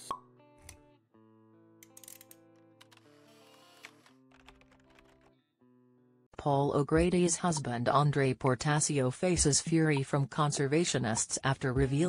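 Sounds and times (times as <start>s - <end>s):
soft background music: 6.4s - 12.0s.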